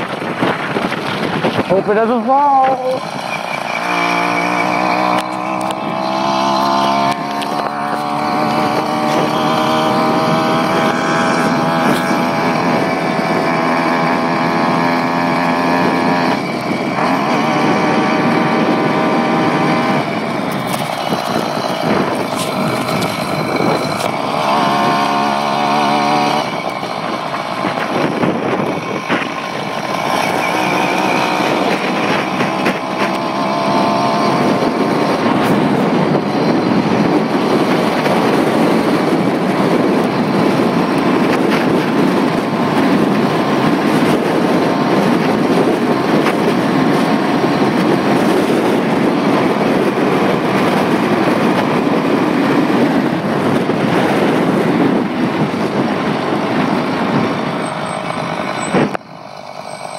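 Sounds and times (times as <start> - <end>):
two-stroke engine revving: 0.1 - 59.9.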